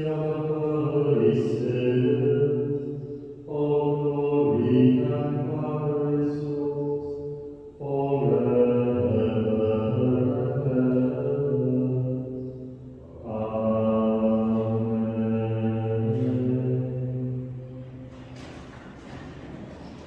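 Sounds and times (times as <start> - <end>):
liturgical chant singing: 0.0 - 20.0.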